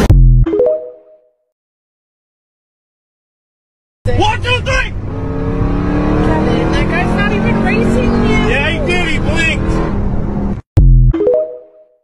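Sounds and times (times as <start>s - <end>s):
vehicle engine and road noise: 4.1s - 10.7s.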